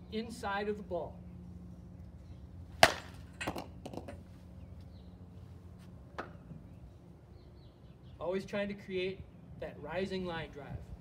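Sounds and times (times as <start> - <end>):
bat hitting softball: 2.8 - 4.2.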